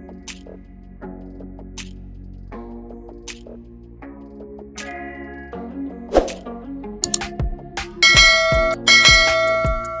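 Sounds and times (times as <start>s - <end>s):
background music with steady beat: 0.0s - 10.0s
bell-like chime: 8.0s - 10.0s.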